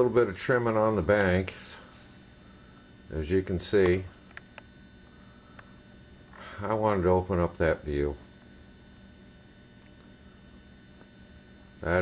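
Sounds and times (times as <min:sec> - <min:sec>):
man speaking: 0:00.0 - 0:01.9, 0:03.1 - 0:04.1, 0:06.6 - 0:08.2
faint high whine: 0:00.0 - 0:12.0
low electrical hum: 0:00.0 - 0:12.0.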